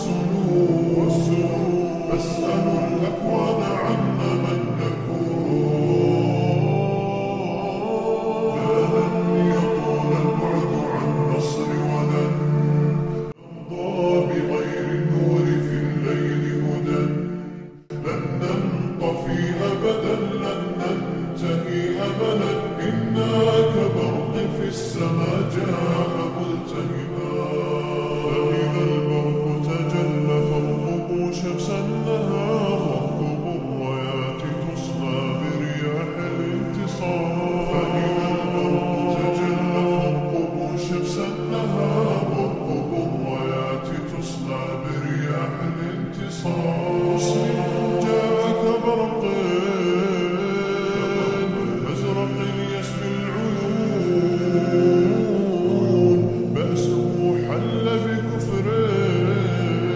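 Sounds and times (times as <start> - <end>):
layered voices chanting: 0.0 - 59.9.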